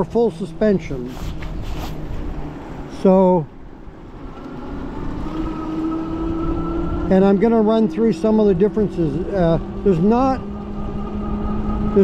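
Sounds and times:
wind and tyres on wet pavement: 0:00.0 - 0:12.0
electric hub motor whining: 0:03.6 - 0:12.0.

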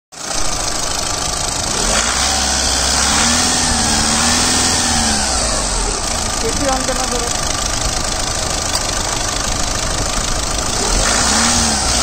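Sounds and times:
diesel engine running: 0:00.2 - 0:12.0.

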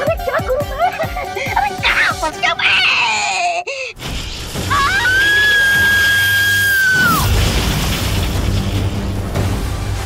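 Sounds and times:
background music: 0:00.0 - 0:03.6, 0:04.6 - 0:10.0.

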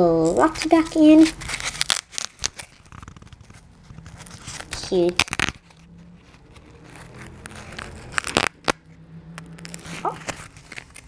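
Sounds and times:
toy crinkling and rustling: 0:00.0 - 0:11.0.

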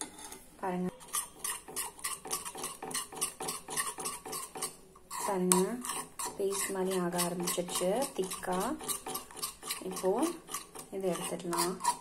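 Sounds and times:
spoon scraping metal pan: 0:00.0 - 0:12.0.

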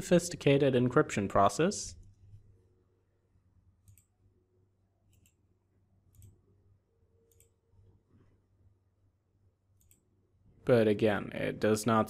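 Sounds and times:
computer mouse clicks: 0:03.8 - 0:04.2, 0:05.1 - 0:05.4, 0:06.1 - 0:06.4, 0:07.3 - 0:07.6, 0:09.8 - 0:10.1.

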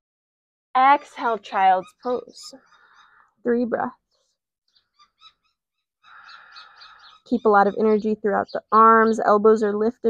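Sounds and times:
short bird chirps: 0:04.1 - 0:07.4.

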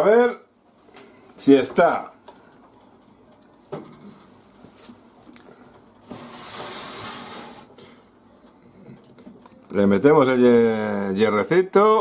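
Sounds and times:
oven tray scraping on runners: 0:06.0 - 0:07.8.

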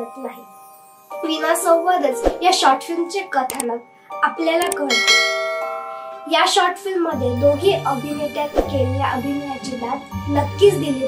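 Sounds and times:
bell-like chime: 0:00.0 - 0:11.0
woman speaking: 0:01.2 - 0:05.0, 0:06.3 - 0:11.0.

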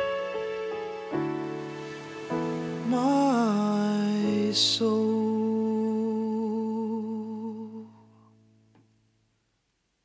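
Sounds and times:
person singing long note: 0:02.8 - 0:08.0.

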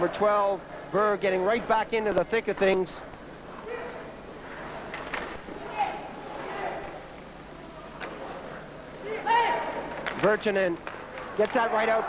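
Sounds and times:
crowd murmur: 0:03.0 - 0:12.0
crowd shouts: 0:05.6 - 0:07.0, 0:09.0 - 0:09.9.

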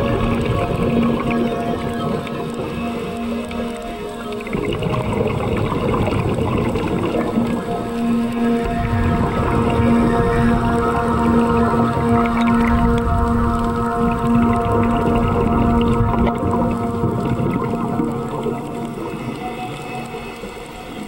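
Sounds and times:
motor humming underwater: 0:00.0 - 0:21.0
rumbling water wash: 0:00.0 - 0:21.0.

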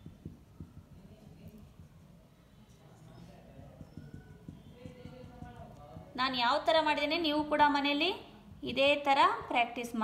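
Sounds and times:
marker pen on writing board: 0:00.0 - 0:07.2.

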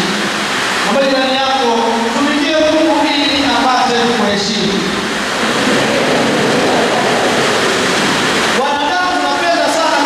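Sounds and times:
steady rushing noise: 0:00.1 - 0:10.0.

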